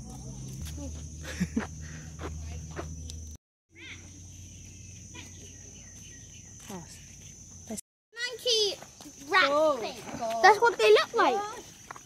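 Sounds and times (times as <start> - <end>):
insects droning: 0.0 - 12.0
short chirping calls: 3.7 - 7.6.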